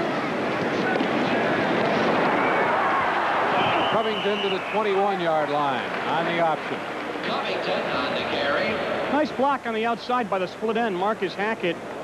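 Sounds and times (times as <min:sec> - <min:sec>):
stadium crowd cheering: 0:00.0 - 0:06.6
high steady whistle: 0:03.5 - 0:04.9.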